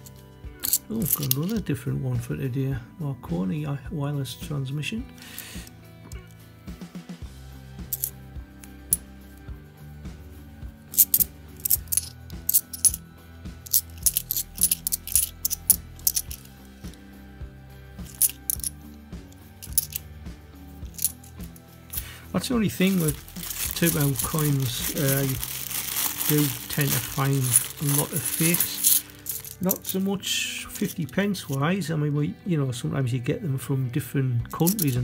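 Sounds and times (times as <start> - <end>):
coins clinking: 0.0 - 1.6, 5.2 - 6.4, 7.9 - 9.1, 10.9 - 13.0, 13.6 - 17.0, 18.0 - 18.8, 19.6 - 20.0, 20.8 - 30.2, 34.6 - 35.0
background music with bass line: 0.0 - 35.0.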